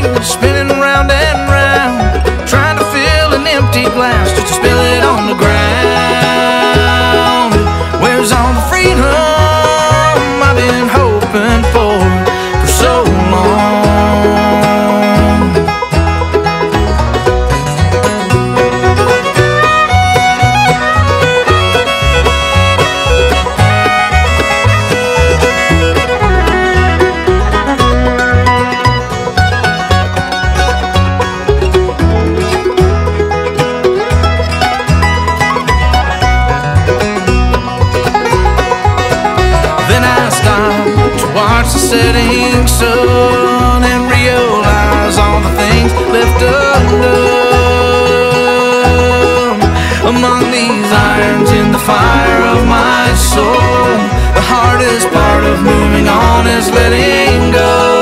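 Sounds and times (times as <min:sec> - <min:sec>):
bowed fiddle: 0:00.0 - 0:58.0
low bass notes: 0:00.0 - 0:58.0
picked banjo: 0:00.0 - 0:58.0
rhythm guitar: 0:00.0 - 0:58.0.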